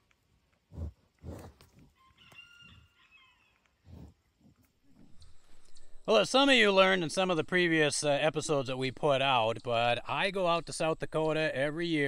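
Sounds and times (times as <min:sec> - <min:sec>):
bison breath puffs: 0:00.7 - 0:01.9, 0:03.8 - 0:06.0.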